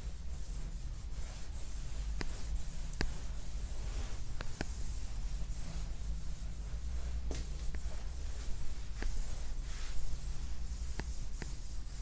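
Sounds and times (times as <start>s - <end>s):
steady low hum: 0.0s - 12.0s
stylus scratching on screen: 0.0s - 12.0s
stylus tapping on screen: 2.2s - 3.2s, 4.4s - 4.9s.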